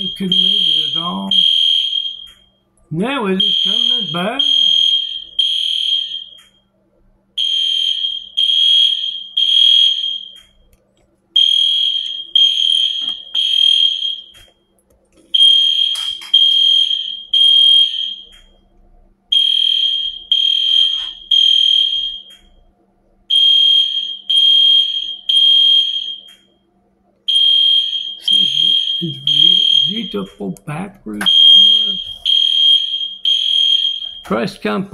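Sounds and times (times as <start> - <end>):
smoke alarm beeping: 0.0 - 6.8, 7.4 - 10.7, 11.4 - 14.7, 15.3 - 22.7, 23.3 - 26.7, 27.3 - 30.4, 31.2 - 34.5.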